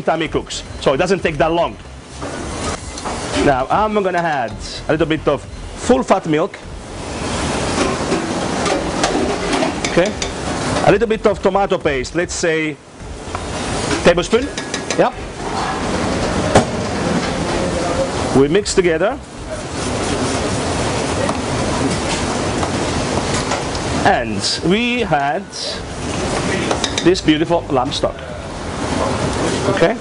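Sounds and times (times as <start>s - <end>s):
steady rushing noise: 0.0s - 30.0s.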